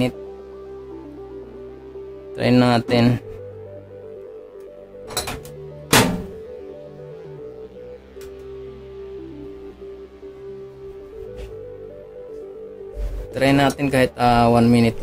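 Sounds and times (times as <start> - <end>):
background music: 0.0 - 15.0
microwave door shutting: 5.1 - 6.4.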